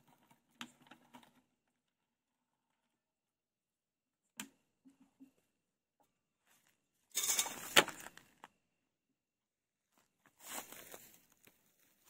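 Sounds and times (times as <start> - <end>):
dry grass crackling: 9.9 - 12.0.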